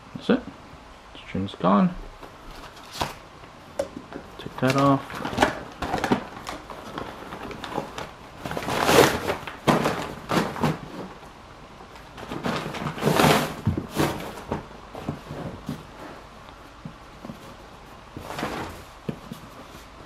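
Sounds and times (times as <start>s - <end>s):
packaging paper rustling: 2.3s - 3.3s, 4.3s - 11.3s, 11.9s - 20.0s.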